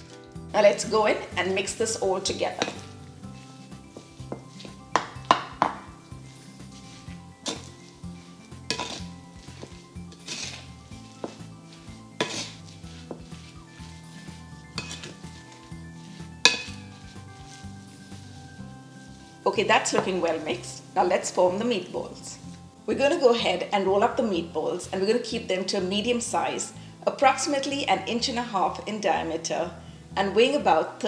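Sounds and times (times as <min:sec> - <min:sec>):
spoon mixing meat in a bowl: 0:01.3 - 0:20.8
spoon knocking against bowl: 0:04.3 - 0:05.9, 0:16.5 - 0:16.8.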